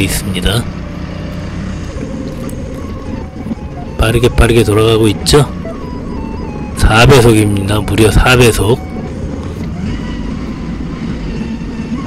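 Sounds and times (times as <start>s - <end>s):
forklift engine running: 0.0s - 7.0s.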